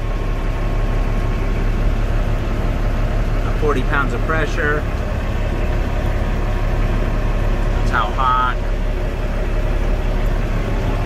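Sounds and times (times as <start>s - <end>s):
diesel engine idling: 0.0s - 11.0s.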